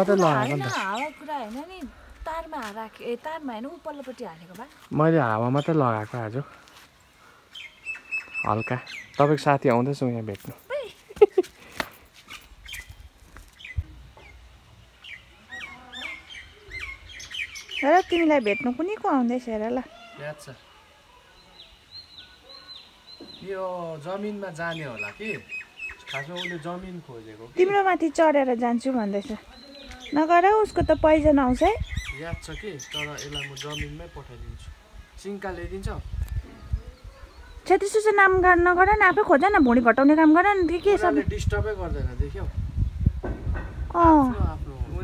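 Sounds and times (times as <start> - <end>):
birds chirping: 0.0 - 45.0
thump: 43.2 - 43.9.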